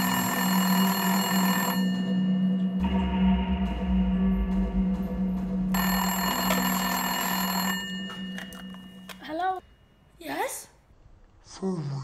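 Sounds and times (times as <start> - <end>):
telephone bell ringing: 0.0 - 2.6, 5.8 - 9.6.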